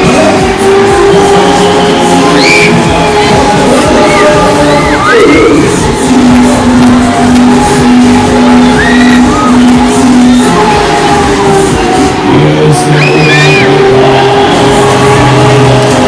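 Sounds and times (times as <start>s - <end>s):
loud dance music: 0.0s - 16.0s
riders whooping and screaming: 0.1s - 5.8s, 7.6s - 16.0s.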